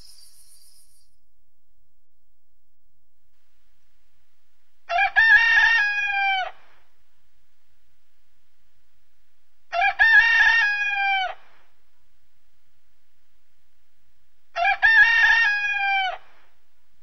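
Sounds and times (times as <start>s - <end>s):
rooster crowing: 4.9s - 6.6s, 14.6s - 16.3s.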